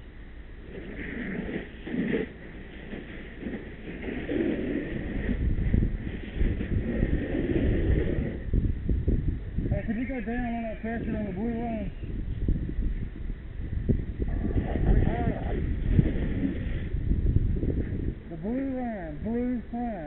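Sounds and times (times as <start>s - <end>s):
wind buffeting microphone: 0.0s - 20.0s
muffled voices: 9.6s - 12.4s, 14.2s - 16.8s, 18.2s - 20.0s.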